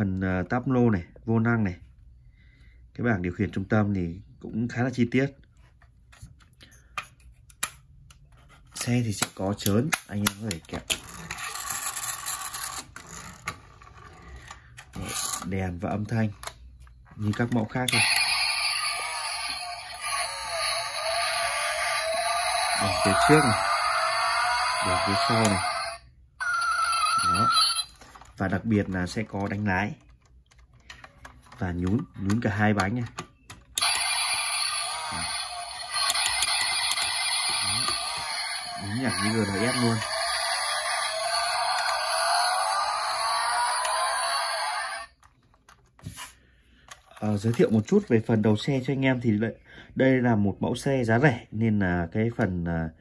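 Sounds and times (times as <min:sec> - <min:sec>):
tinny electronic sound effect: 0:33.8 - 0:45.1.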